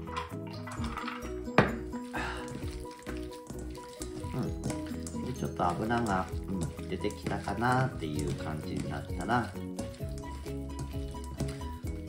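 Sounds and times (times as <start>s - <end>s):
background music: 0.0s - 12.0s
steel bowl clink: 0.0s - 12.0s
hands kneading raw chicken: 2.1s - 12.0s.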